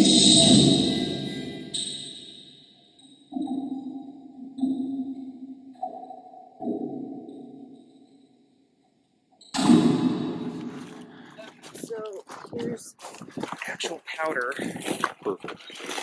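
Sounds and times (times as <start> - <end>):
voices: 0.0 - 1.7, 11.0 - 15.8
electronic sonar pings: 0.0 - 11.5
loud noisy hit: 9.6 - 11.1.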